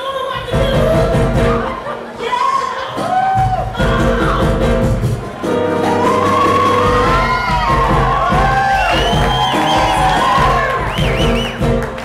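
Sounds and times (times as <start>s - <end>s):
woman singing: 0.0s - 4.9s
crowd cheering: 1.5s - 4.1s, 5.0s - 12.0s
backing track with low beat: 3.3s - 12.0s.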